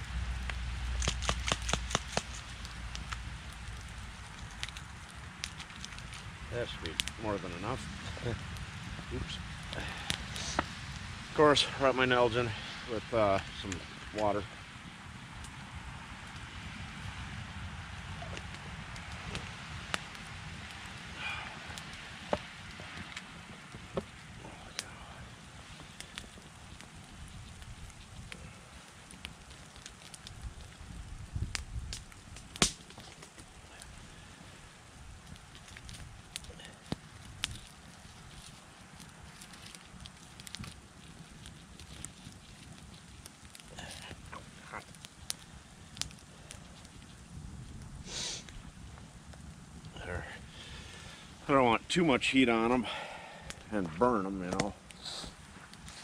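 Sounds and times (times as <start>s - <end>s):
low steady rumble: 0.0s - 32.6s
campfire crackling and popping: 0.0s - 56.0s.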